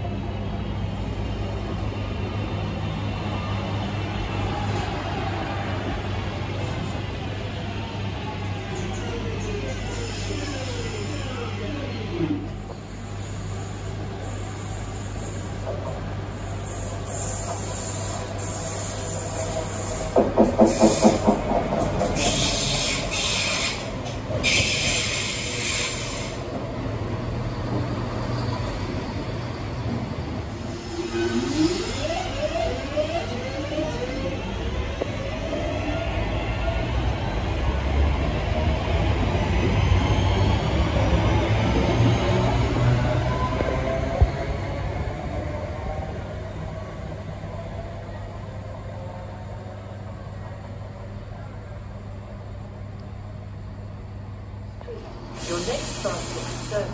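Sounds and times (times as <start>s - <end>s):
train hiss: 9.7s - 11.7s, 12.6s - 26.6s, 55.0s - 56.9s.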